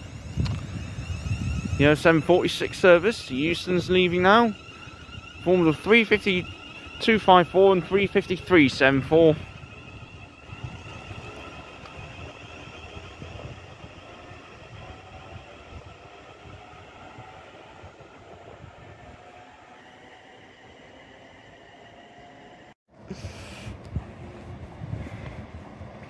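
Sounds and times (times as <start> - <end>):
faint rising whine: 0.0 - 22.8
electric train pulling away: 0.0 - 26.0.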